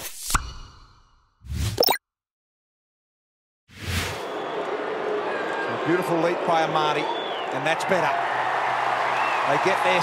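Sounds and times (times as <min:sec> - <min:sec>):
stadium crowd noise: 0:04.1 - 0:10.0.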